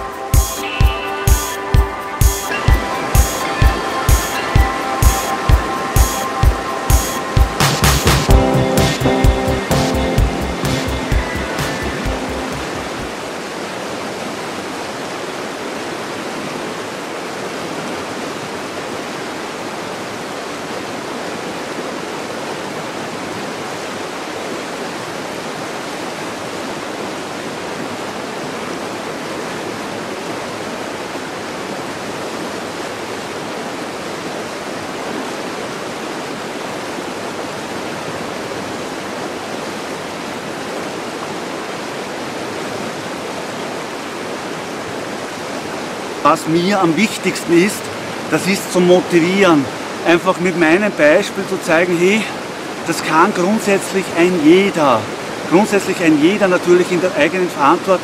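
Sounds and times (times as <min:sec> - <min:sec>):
river rushing over gravel: 0:10.4 - 0:58.0.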